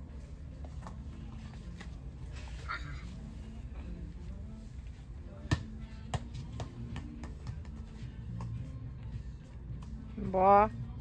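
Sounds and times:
ball bouncing on hard floor: 5.4s - 7.8s.

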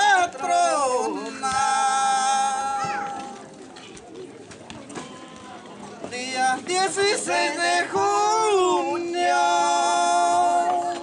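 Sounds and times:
soft crowd murmur: 0.0s - 11.0s.

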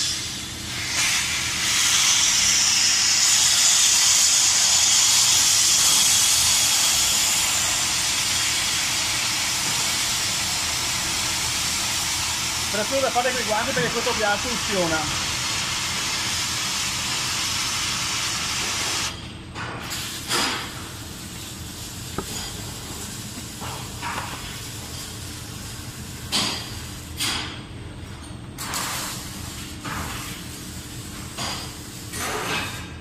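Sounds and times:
gas hissing from cylinder: 0.0s - 19.2s, 19.8s - 27.6s.

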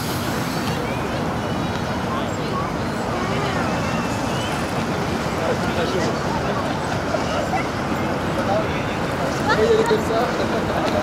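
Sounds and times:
faint voices: 0.0s - 11.0s
wind: 0.0s - 11.0s.

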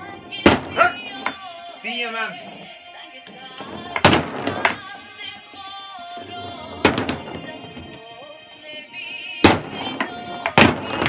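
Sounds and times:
background music: 0.0s - 11.0s
foosball ball struck: 0.3s - 1.4s, 3.6s - 5.0s, 6.2s - 8.0s, 9.4s - 11.0s.

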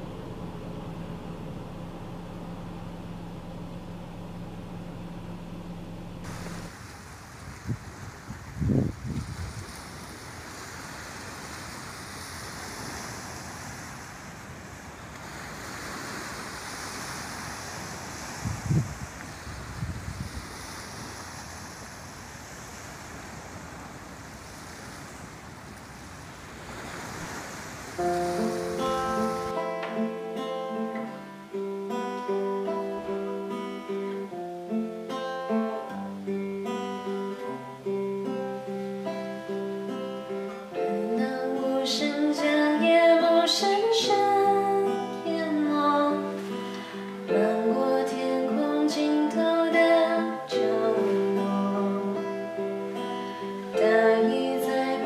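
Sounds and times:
steady low hum: 0.0s - 6.7s
acoustic guitar playing: 0.0s - 6.8s, 28.0s - 55.0s
wind: 0.0s - 55.0s
waves washing on shore: 6.2s - 31.7s, 36.1s - 55.0s.

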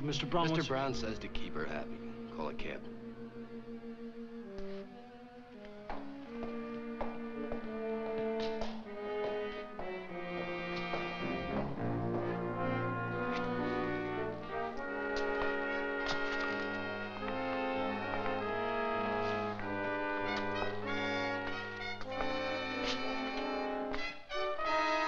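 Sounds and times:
orchestral music led by brass: 0.0s - 25.0s.

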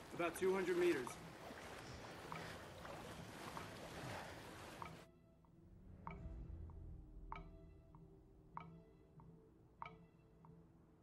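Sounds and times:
wind and water hiss: 0.0s - 5.0s
legs wading through water: 0.0s - 5.1s.

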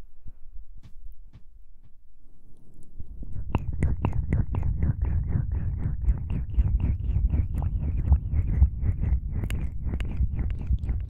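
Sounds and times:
crackling strokes on microphone: 2.3s - 11.0s.

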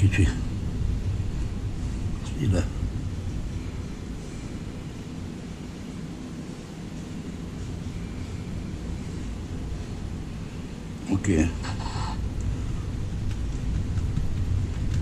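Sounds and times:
low rumble of room noise: 0.0s - 15.0s.

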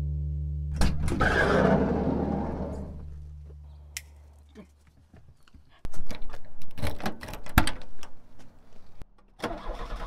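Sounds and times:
sliding van door rumbling open: 1.0s - 3.0s.

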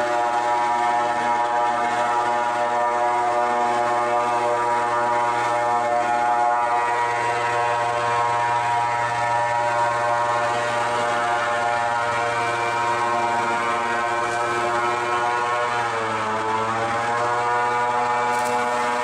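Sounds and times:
airboat engine and propeller drone: 0.0s - 19.0s.

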